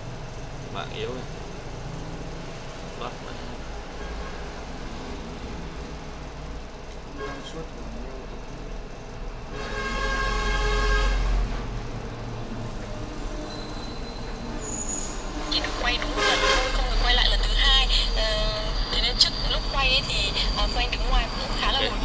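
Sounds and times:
traffic rumble: 0.0 - 22.0.

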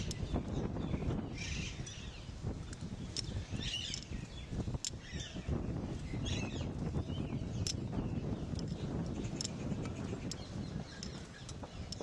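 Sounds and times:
birds chirping: 0.0 - 12.0
sharp clicks: 7.6 - 7.9.

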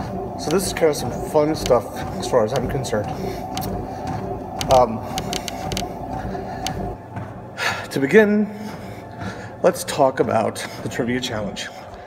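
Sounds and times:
machine humming with faint whine: 0.0 - 12.0
sharp clicks: 4.5 - 5.9.

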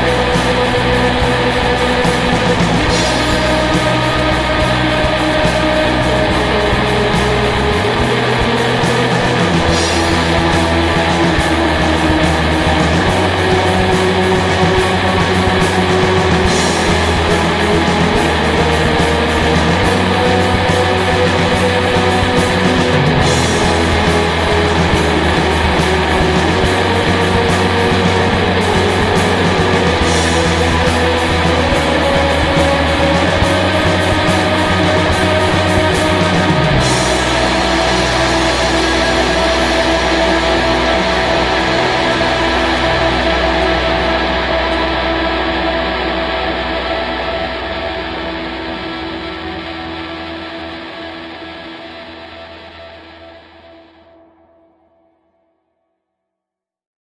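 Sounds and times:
alternative rock instrumental: 0.0 - 54.5.

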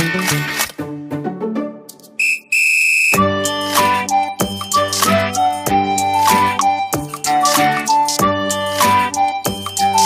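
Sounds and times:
background music: 0.0 - 2.4, 3.2 - 10.0
high whistle tone: 2.2 - 3.3.

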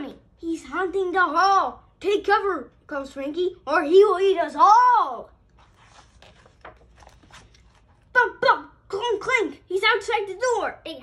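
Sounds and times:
paper page rustling: 5.5 - 8.1.

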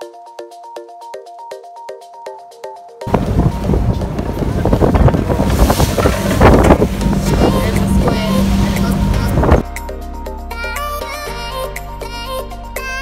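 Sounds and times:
music: 0.0 - 13.0
boat engine drone: 3.1 - 9.6
water noise: 3.1 - 9.6
wind buffeting microphone: 3.1 - 9.6.

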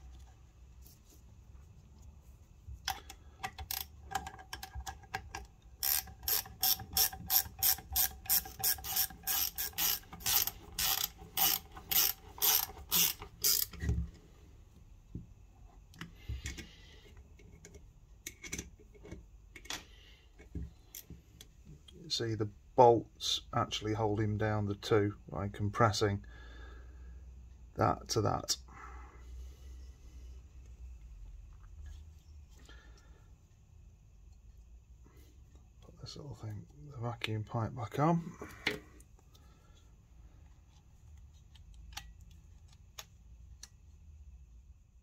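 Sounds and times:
ratchet spanner clicking: 5.8 - 13.8.

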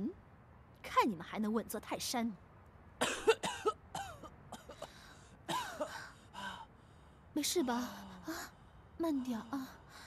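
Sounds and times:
person coughing: 3.0 - 4.9, 5.5 - 6.0.

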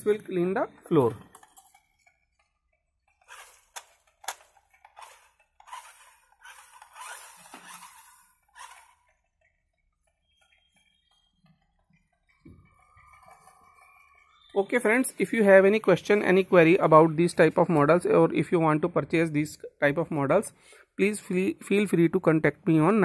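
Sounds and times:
model car scraping on concrete: 3.2 - 15.5.

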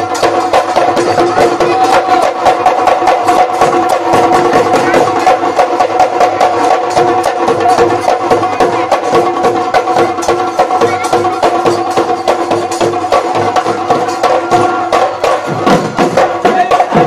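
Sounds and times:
drums beaten in fast rhythm: 0.0 - 17.0.

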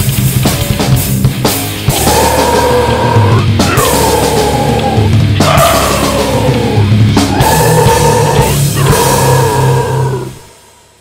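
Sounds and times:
distorted guitars and bass chord: 0.0 - 10.5.

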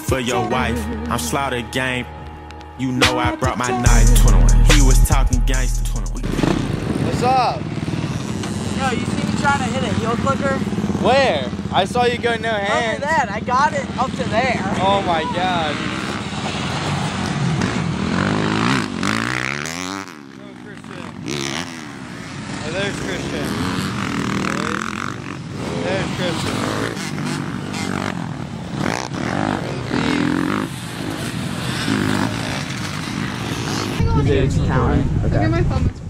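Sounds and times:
voices: 0.0 - 19.2, 20.1 - 36.0
dirt bike engines revving: 0.0 - 36.0.

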